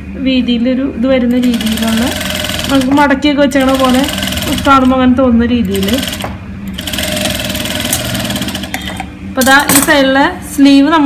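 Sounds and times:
sewing machine running: 0:01.3 - 0:09.1.

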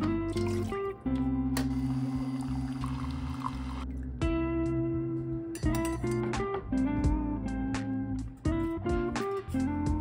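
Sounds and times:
coffee maker humming: 0:01.6 - 0:03.8
coffee pouring into mug: 0:01.7 - 0:03.8.

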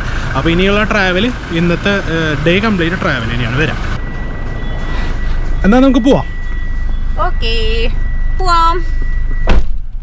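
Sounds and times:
man speaking: 0:00.4 - 0:03.9, 0:05.6 - 0:06.3
high-pitched tone: 0:03.0 - 0:09.4.

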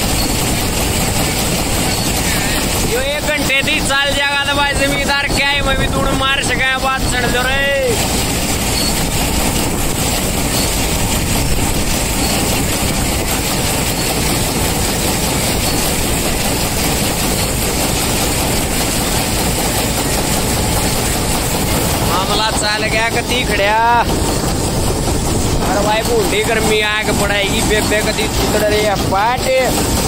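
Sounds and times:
combine harvester running: 0:00.0 - 0:30.0.

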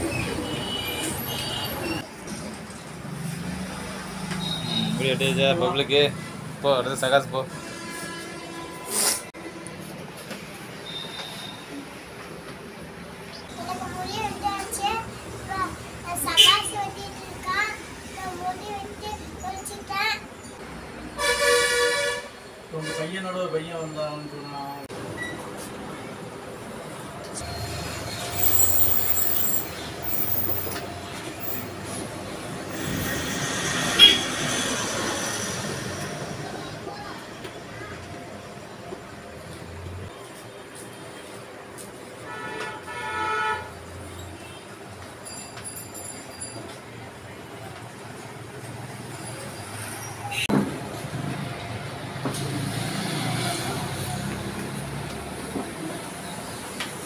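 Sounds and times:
low hum of traffic: 0:00.0 - 0:57.0
vehicle horn: 0:07.5 - 0:09.7, 0:21.2 - 0:23.1, 0:33.9 - 0:34.4, 0:42.3 - 0:43.7
vehicle horn honk: 0:21.2 - 0:23.1, 0:33.9 - 0:34.3.

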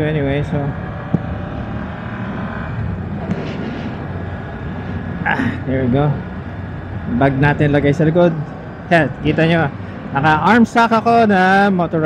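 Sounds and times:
motorcycle engine running: 0:00.0 - 0:09.6
wind and road noise: 0:00.0 - 0:12.0.

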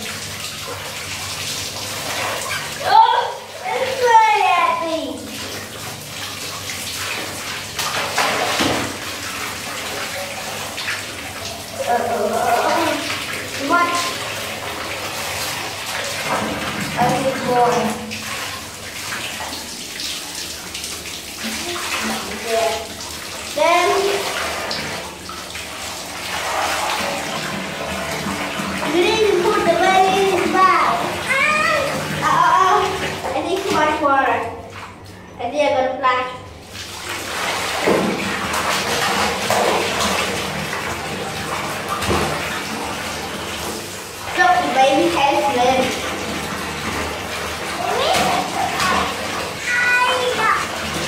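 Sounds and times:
water splashing on plastic toy: 0:00.0 - 0:35.2, 0:36.7 - 0:51.0
tap water running: 0:00.0 - 0:51.0
children's voices: 0:02.8 - 0:05.2, 0:11.8 - 0:14.1, 0:28.9 - 0:34.6, 0:47.8 - 0:50.7.

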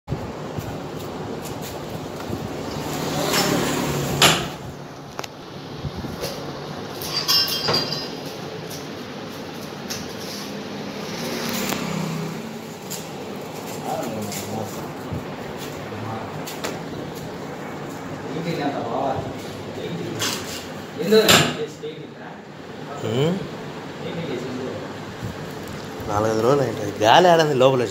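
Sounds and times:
metal parts clattering: 0:07.0 - 0:08.2.

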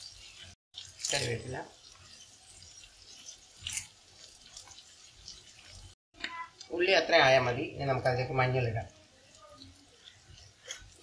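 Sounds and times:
leaves crackling in hot pan: 0:00.0 - 0:11.0.

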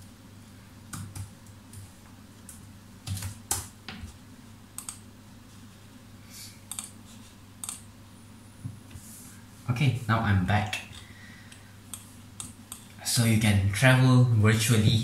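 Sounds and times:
faint low hum: 0:00.0 - 0:15.0
computer keyboard typing: 0:00.9 - 0:01.8, 0:02.5 - 0:03.7, 0:06.7 - 0:07.0.

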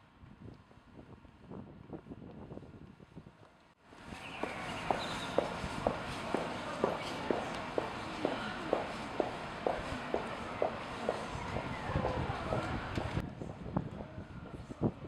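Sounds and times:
footsteps on cobblestones: 0:02.2 - 0:14.6
street bustle: 0:03.5 - 0:15.0.

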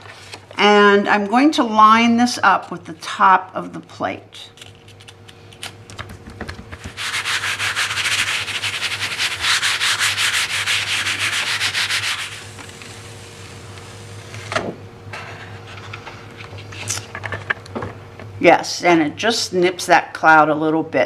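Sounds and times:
paper rustles and taps: 0:05.9 - 0:07.0
baren scrubbing over paper: 0:06.7 - 0:14.4.

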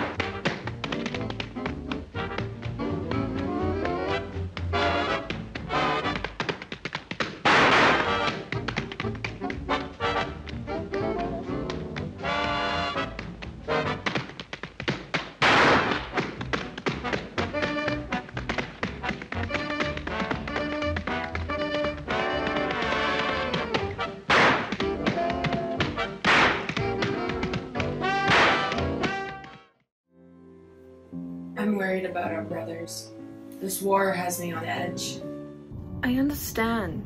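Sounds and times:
big band swing music: 0:00.0 - 0:06.4, 0:07.6 - 0:14.2, 0:15.6 - 0:29.5
tap dance shoes on hard floor: 0:00.0 - 0:29.7.

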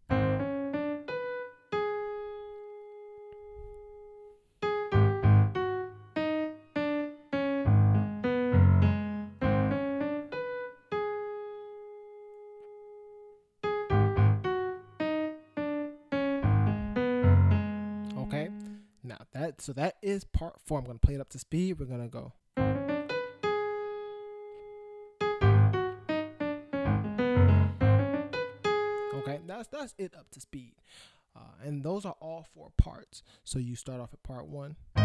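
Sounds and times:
piano played slowly: 0:00.0 - 0:18.8, 0:22.6 - 0:29.5.

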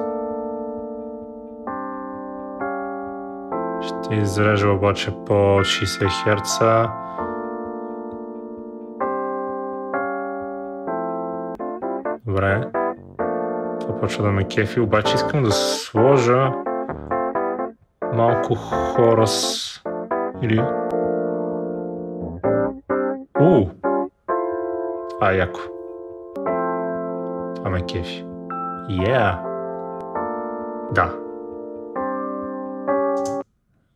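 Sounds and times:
electric piano chords: 0:00.0 - 0:33.4.

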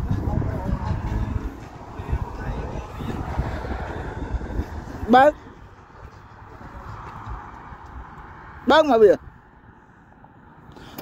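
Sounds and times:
low uneven rumble: 0:00.0 - 0:08.2.

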